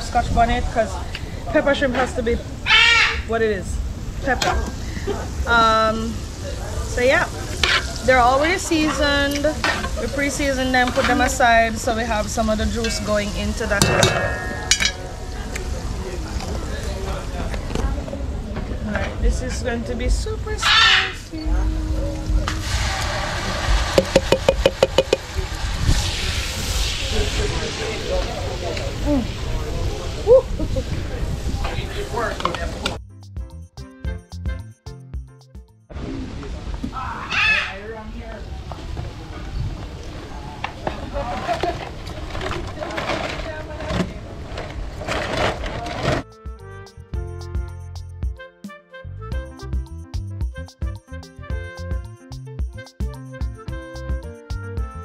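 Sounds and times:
indistinct voices: 1.0 - 23.8
crayfish sizzling in a wok: 4.2 - 16.8, 22.6 - 32.3
steady low rumble: 21.3 - 32.2
background music: 33.0 - 35.9, 46.2 - 55.0.

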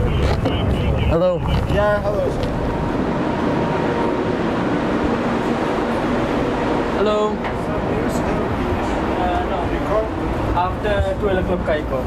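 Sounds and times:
marine engine running: 0.0 - 12.0.

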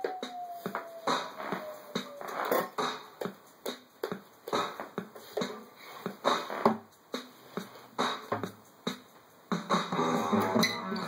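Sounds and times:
rhythmic clicks and taps: 0.0 - 11.0.

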